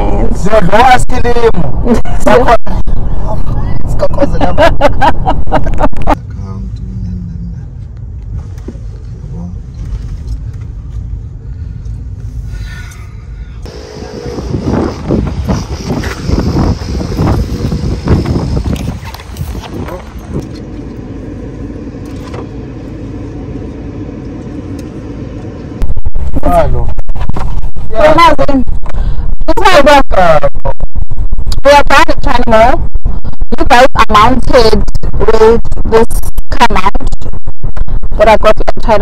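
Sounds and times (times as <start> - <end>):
car driving inside cabin rumble: 0.0 - 39.0.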